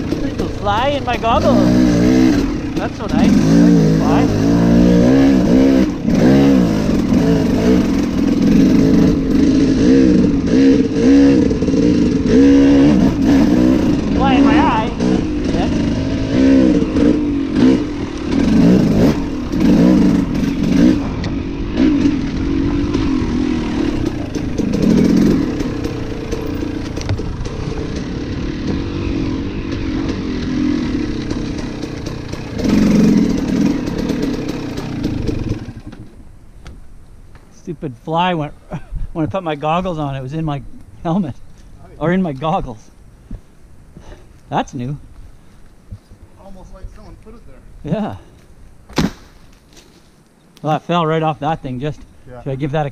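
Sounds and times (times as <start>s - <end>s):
dirt bike engine revving: 0.0s - 36.2s.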